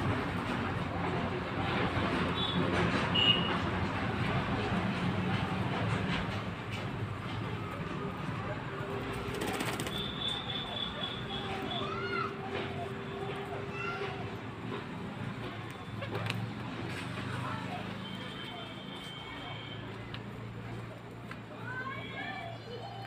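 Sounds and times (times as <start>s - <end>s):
pigeons calling: 9.2s - 12.9s.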